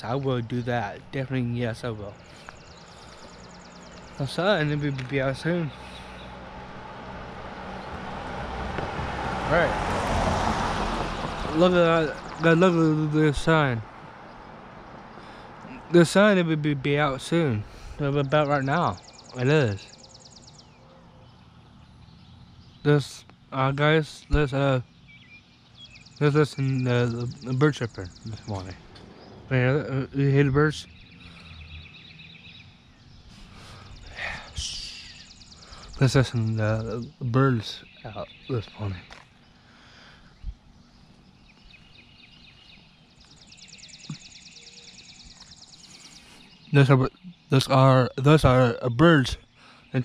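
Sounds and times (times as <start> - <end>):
man speaking: 0.0 - 2.2, 4.2 - 5.8, 9.5 - 9.7, 11.5 - 13.9, 15.7 - 19.9, 22.9 - 24.8, 26.2 - 28.8, 29.5 - 30.9, 34.1 - 35.2, 36.0 - 39.1, 46.7 - 49.4
faint birdsong: 0.0 - 50.0
songbirds chirping: 0.0 - 50.0.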